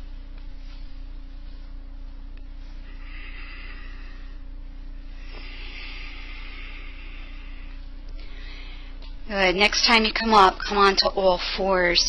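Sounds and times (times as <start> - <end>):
soft airy hiss: 0.0 - 9.1
low electrical hum: 0.0 - 12.0.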